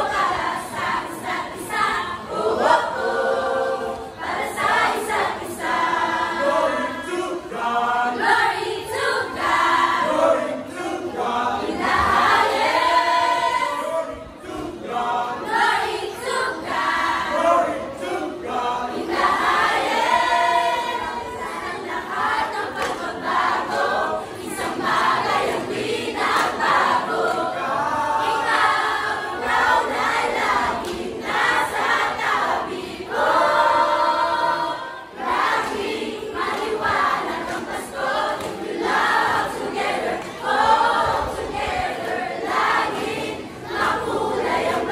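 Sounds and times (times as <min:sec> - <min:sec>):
girls choir singing: 0:00.0 - 0:44.9.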